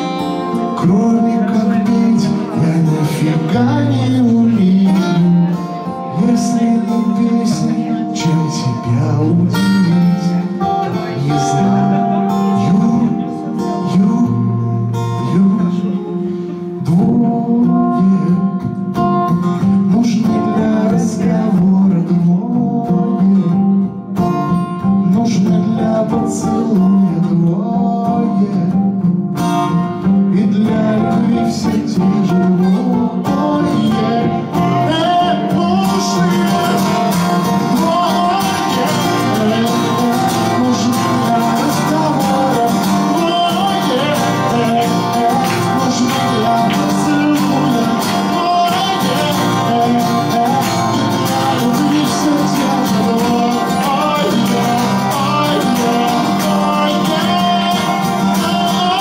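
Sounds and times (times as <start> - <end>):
acoustic guitars playing: 0.0 - 59.0.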